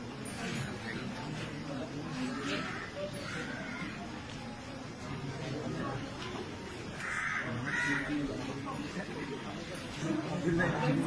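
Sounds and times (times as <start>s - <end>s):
crow cawing: 7.0s - 8.2s.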